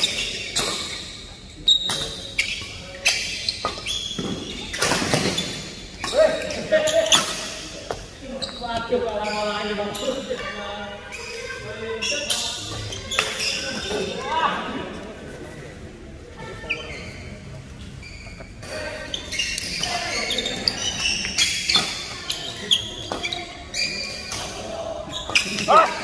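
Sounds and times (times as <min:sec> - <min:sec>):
shoes squeaking on court floor: 0:00.0 - 0:14.6, 0:16.4 - 0:26.0
players' voices: 0:00.0 - 0:26.0.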